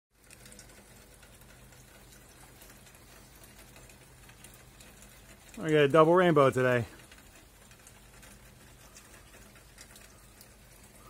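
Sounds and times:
light ticks and clicks: 0.2 - 11.0.

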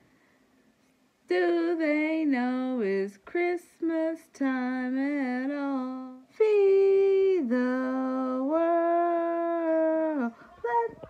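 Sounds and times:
woman singing long notes: 1.3 - 11.0.

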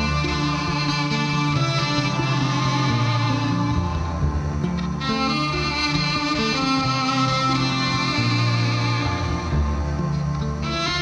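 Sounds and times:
cellos bowing long notes: 0.0 - 11.0.

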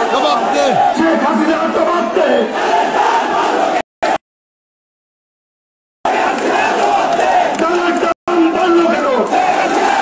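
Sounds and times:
crowd chanting slogans: 0.0 - 4.2, 6.1 - 8.0, 8.9 - 10.0.

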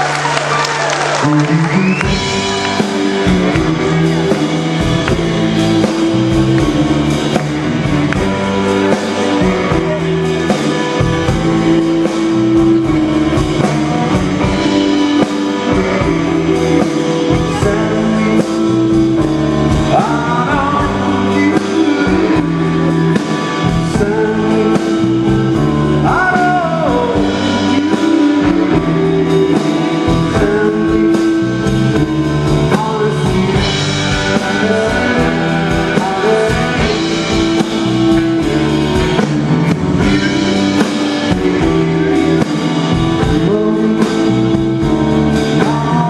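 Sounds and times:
rock and roll band playing: 0.0 - 46.0
man singing: 1.2 - 46.0.

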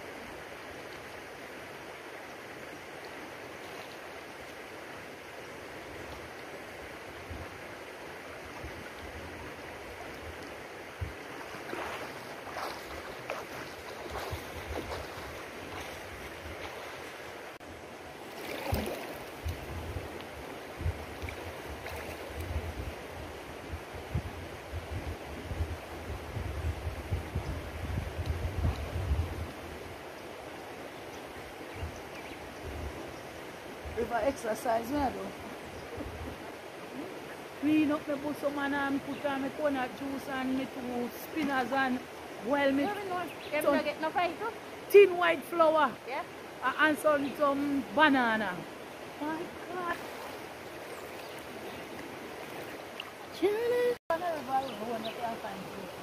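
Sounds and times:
shallow river water flowing: 0.0 - 56.0
water splashes: 5.7 - 17.6, 18.2 - 23.0, 33.9 - 56.0.

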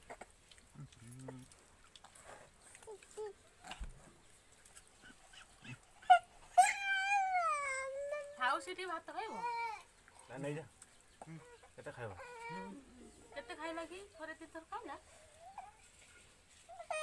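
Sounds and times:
dog whining: 5.0 - 8.5, 11.4 - 13.6, 16.7 - 17.0.

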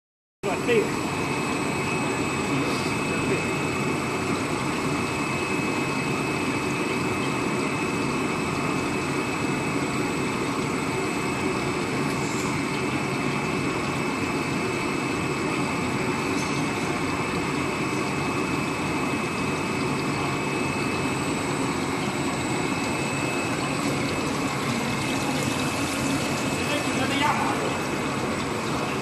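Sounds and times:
machine high-pitched whines: 0.4 - 29.0.

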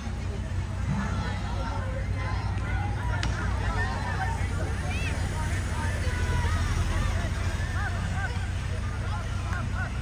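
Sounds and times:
young players calling and shouting: 0.0 - 10.0.

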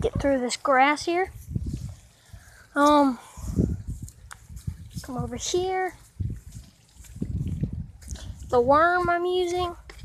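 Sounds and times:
muffled rumbling on microphone: 3.3 - 10.0.

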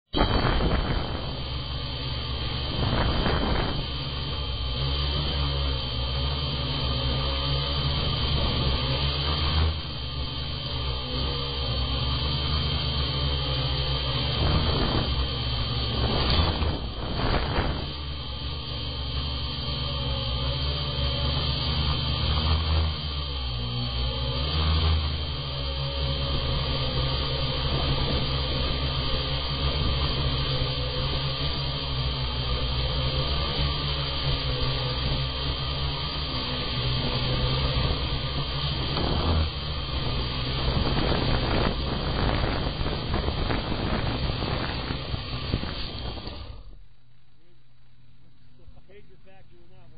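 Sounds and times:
wind noise on microphone: 0.0 - 46.8
drone motors whining: 0.0 - 49.9.

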